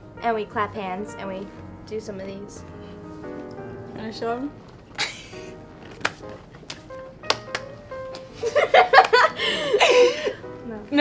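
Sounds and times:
hand claps and slaps: 5.8 - 9.3.

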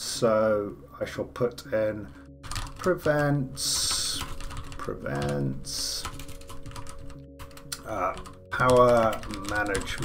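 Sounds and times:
computer keyboard typing: 2.3 - 10.0.

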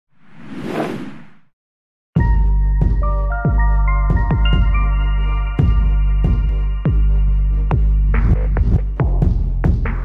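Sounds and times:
whoosh sound effect: 0.2 - 1.5.

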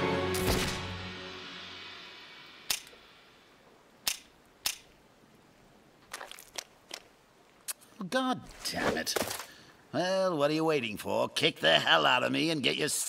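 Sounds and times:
film music: 0.0 - 3.6
toy gun clicks: 4.0 - 4.9.

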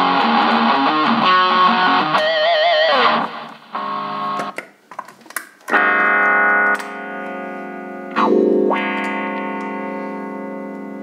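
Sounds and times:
distorted electric guitar chords: 0.0 - 4.6, 5.7 - 11.0.

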